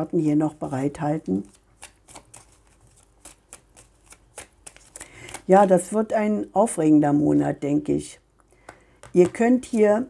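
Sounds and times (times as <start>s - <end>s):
cards being shuffled: 1.3s - 5.6s.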